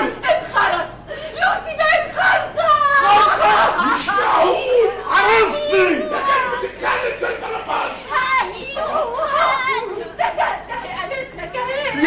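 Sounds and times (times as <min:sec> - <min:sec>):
actors crying out: 0:00.0 - 0:12.0.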